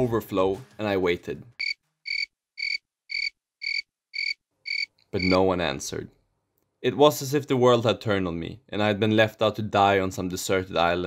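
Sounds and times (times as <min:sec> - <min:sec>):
cricket chirps: 0:01.6 - 0:05.4.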